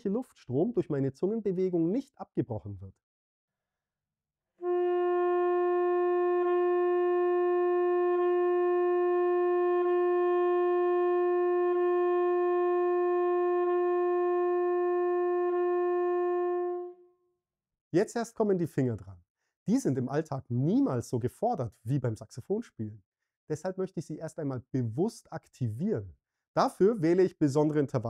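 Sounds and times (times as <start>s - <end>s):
saxophone holding a long note: 4.6s - 17.1s.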